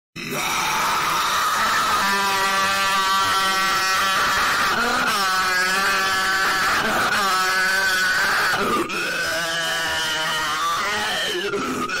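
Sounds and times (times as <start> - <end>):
person screaming: 0.2 - 12.0.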